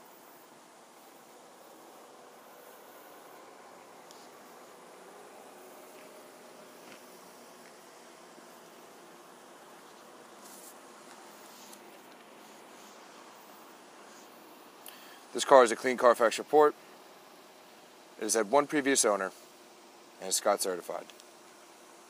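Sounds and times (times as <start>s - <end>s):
outdoor background hiss: 0.0s - 22.0s
faint ticks: 21.0s - 21.4s.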